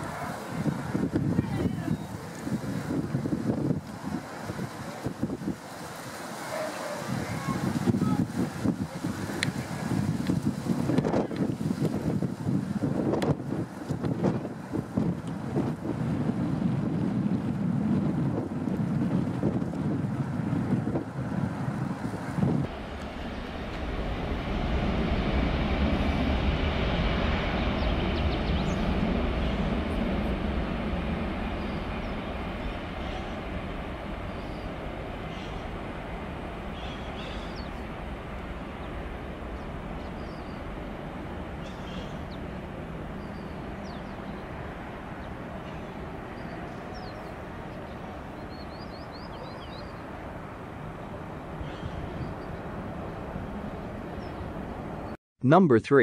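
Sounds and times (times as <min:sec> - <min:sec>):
jet engines: 0:00.0 - 0:55.2
wind buffeting microphone: 0:00.0 - 0:55.2
jet takeoff rumble: 0:00.0 - 0:56.0.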